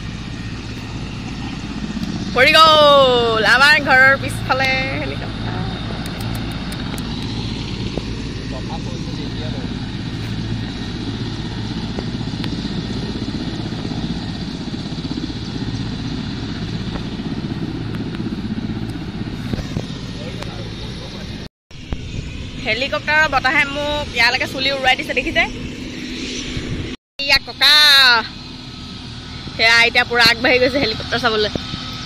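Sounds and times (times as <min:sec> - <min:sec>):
helicopter engine and rotor: 0:00.0 - 0:32.0.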